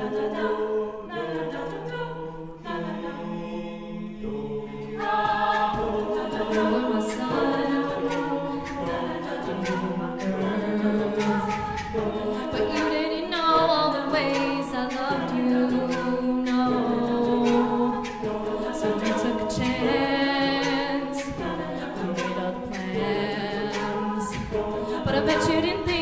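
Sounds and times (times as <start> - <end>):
group singing wordless chords: 0.0 - 26.0
vocal percussion beat: 0.0 - 26.0.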